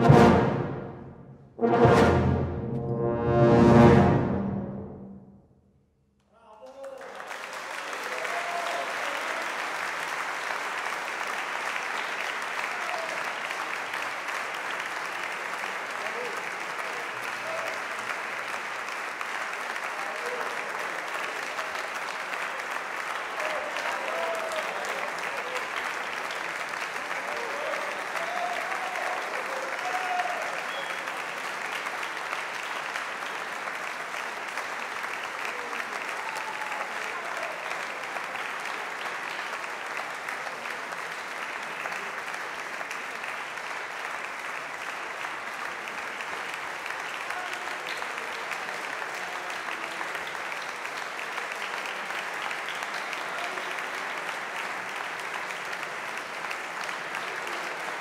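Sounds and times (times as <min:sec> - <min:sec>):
audience applauding: 0:06.4 - 0:58.0.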